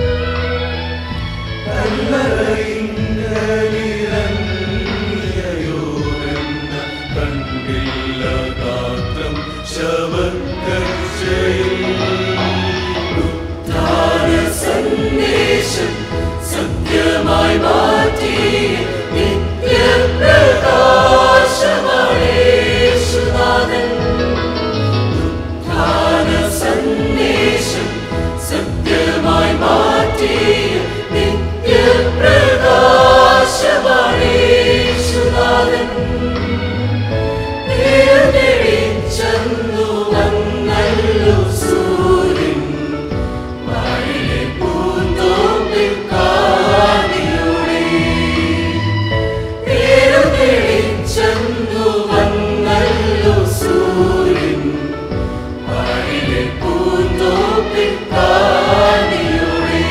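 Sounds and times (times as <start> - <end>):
instrumental accompaniment with bass: 0.0 - 59.9
mixed choir singing in harmony: 0.0 - 59.9.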